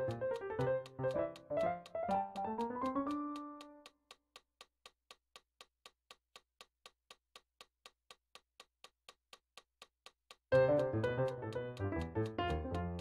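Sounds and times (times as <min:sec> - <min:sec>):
metronome ticking: 0:00.0 - 0:13.0.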